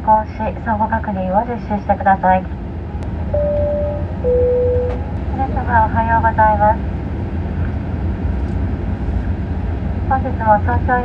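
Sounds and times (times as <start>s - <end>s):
aircraft cabin rumble: 0.1s - 11.0s.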